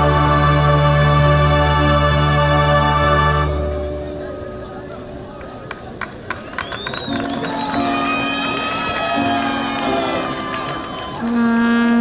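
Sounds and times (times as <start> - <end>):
crowd yelling and cheering: 4.2 - 11.6
sharp claps: 5.3 - 11.4
marching band chord: 7.0 - 12.0
horn-like tone: 9.2 - 12.0.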